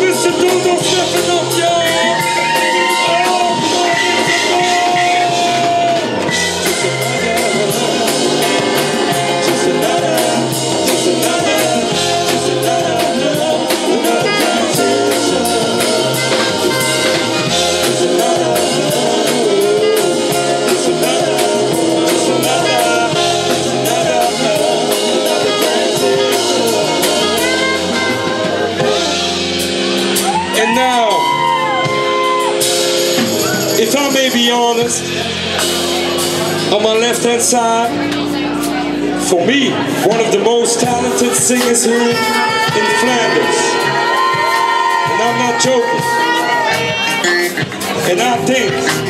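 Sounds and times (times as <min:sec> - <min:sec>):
held keyboard notes: 0:00.0 - 0:49.0
jazz-funk band playing: 0:00.0 - 0:49.0
pulsing bass line: 0:00.0 - 0:49.0.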